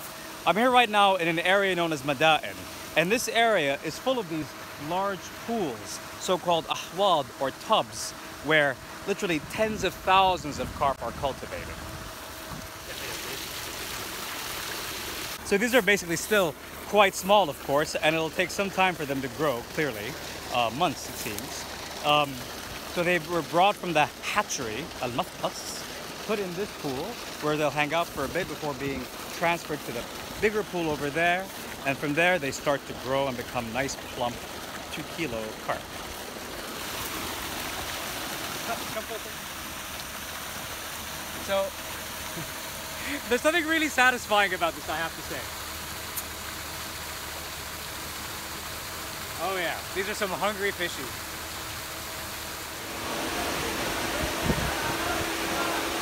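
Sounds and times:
fish splashing in water: 0:12.0 - 0:15.5, 0:32.9 - 0:43.4
fish splashing at water surface: 0:12.0 - 0:43.5.

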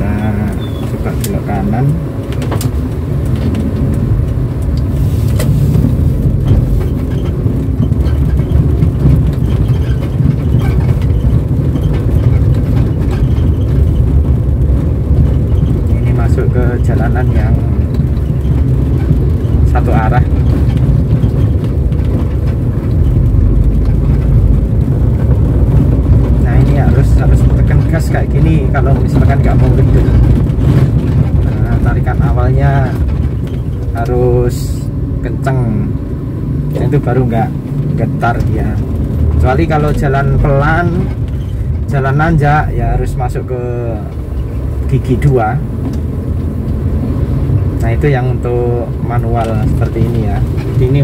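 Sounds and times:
car engine and road noise: 0:00.0 - 0:51.0.

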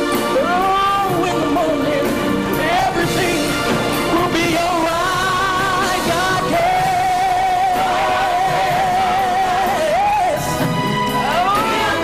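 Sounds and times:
live gospel band: 0:00.0 - 0:12.0.

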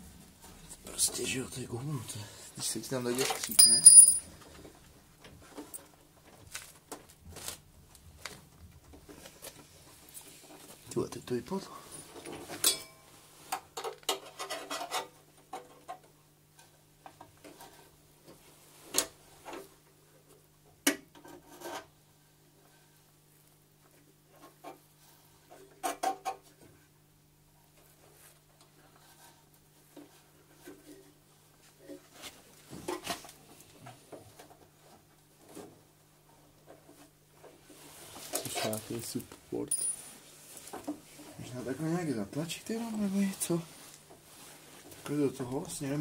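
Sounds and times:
hand tool clinking on metal: 0:03.4 - 0:04.3, 0:39.7 - 0:40.1.

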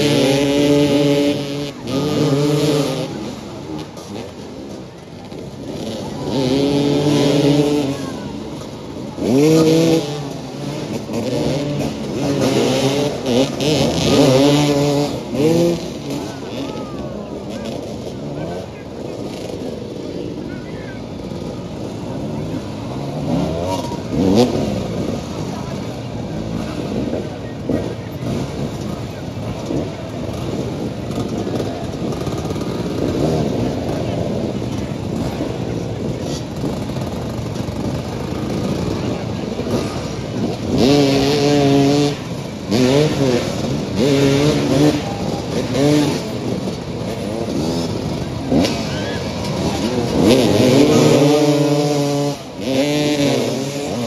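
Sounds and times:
motorcycle engines revving: 0:00.0 - 0:54.0.

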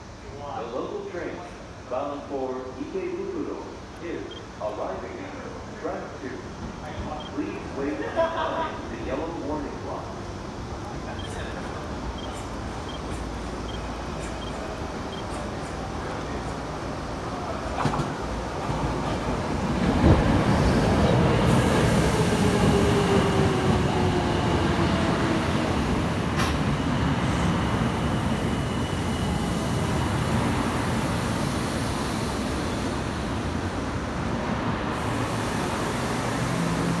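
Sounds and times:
train wheels rumbling on rails: 0:10.7 - 0:37.0.

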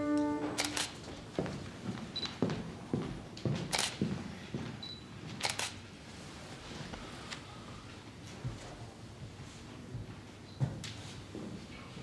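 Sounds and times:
footsteps on parquet floor: 0:00.0 - 0:04.8
camera autofocus beeps: 0:00.6 - 0:00.9, 0:04.8 - 0:05.8
camera shutter clicks: 0:00.6 - 0:01.0, 0:03.7 - 0:03.9, 0:05.4 - 0:05.8.

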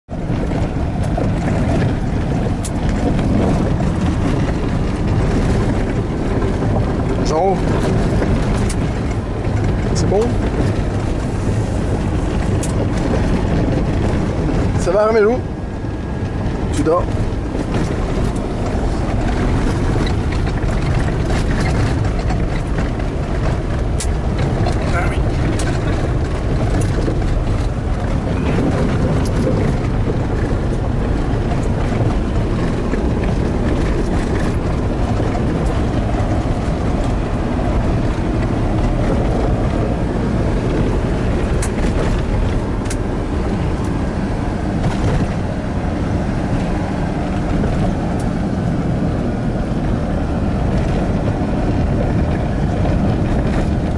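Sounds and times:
engine and tyres on gravel: 0:00.0 - 0:53.9
sharp clicks and rattles: 0:00.1 - 0:53.9.

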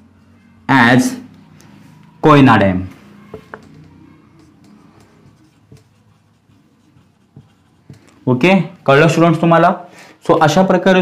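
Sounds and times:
marker pen writing on whiteboard: 0:03.1 - 0:09.5, 0:10.2 - 0:11.0.

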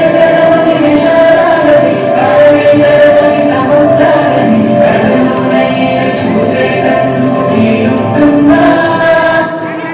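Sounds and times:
recorded song with singing: 0:00.0 - 0:09.9.

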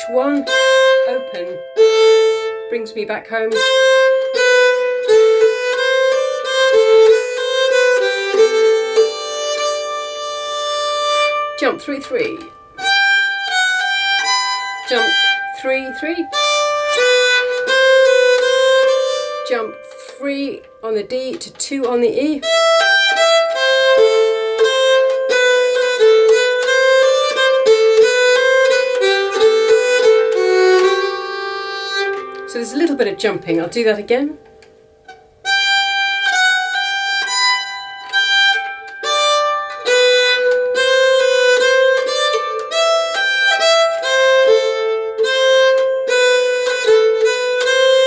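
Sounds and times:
bowed keyed fiddle melody: 0:00.0 - 0:48.0.

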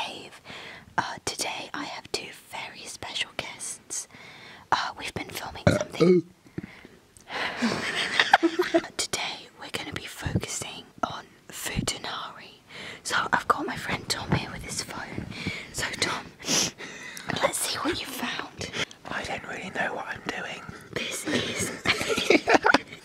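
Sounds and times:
person whispering: 0:09.0 - 0:16.4, 0:17.3 - 0:21.7.

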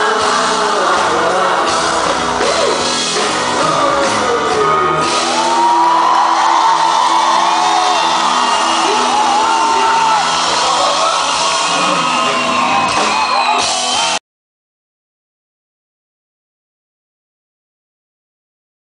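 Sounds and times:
pop-rock band playing live: 0:00.0 - 0:14.2
crowd whooping and yelling: 0:04.3 - 0:14.2.

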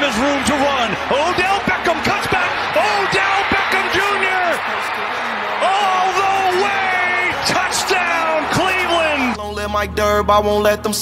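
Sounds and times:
announcer shouting excitedly: 0:00.0 - 0:09.4
crowd noise: 0:00.0 - 0:09.4.

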